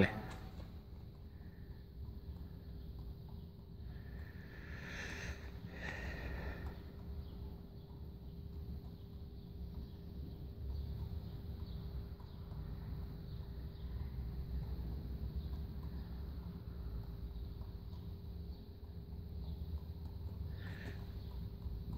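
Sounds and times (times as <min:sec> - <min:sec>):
steady hum: 0:00.0 - 0:21.9.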